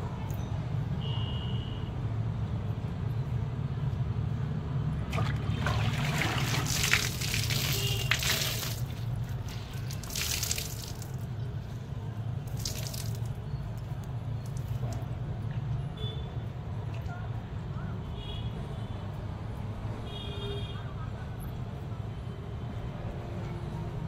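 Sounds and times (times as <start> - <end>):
wet cloth wrung by hand: 5.1 - 11.3, 12.5 - 13.4
water splashing onto concrete: 5.1 - 11.4, 12.4 - 15.0.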